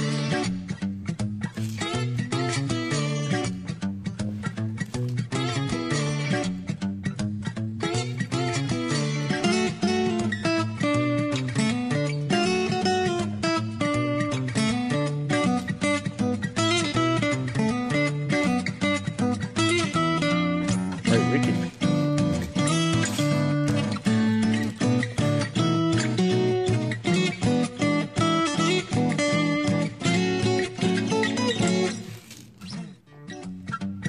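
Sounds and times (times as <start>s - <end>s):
acoustic guitar music: 0.0s - 34.0s.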